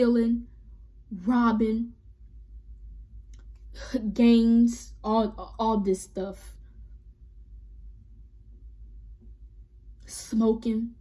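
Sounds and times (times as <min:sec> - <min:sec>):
woman speaking: 0:00.0 - 0:00.5, 0:01.1 - 0:02.0, 0:03.8 - 0:06.6, 0:10.0 - 0:11.0
low steady hum: 0:00.0 - 0:11.0.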